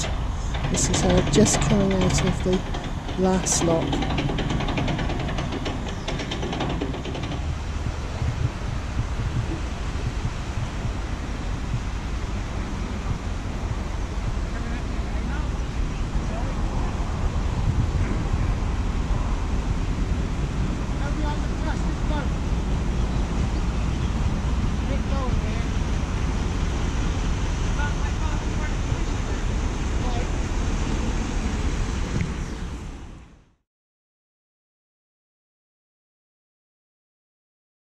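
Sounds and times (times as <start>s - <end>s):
wind buffeting microphone: 0.0s - 33.4s.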